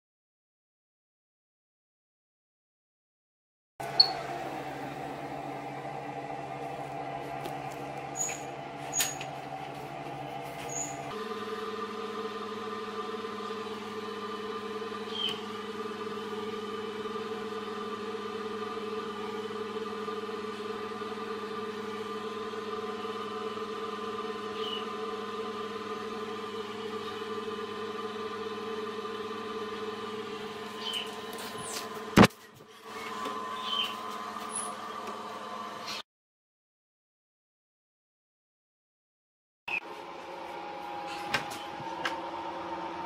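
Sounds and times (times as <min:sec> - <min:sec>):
fan motor humming: 0:03.8 - 0:36.0, 0:39.8 - 0:43.0.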